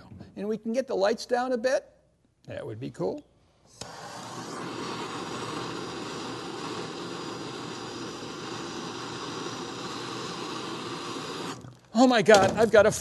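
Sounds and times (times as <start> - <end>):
propane torch hissing: 3.6 - 13.0.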